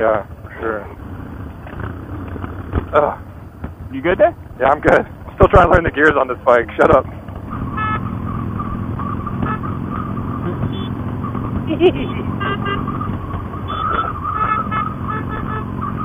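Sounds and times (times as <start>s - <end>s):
motorcycle engine cruising: 0.0s - 16.0s
wind and road noise: 0.0s - 16.0s
brief higher-pitched tones: 10.4s - 11.0s, 13.7s - 14.8s.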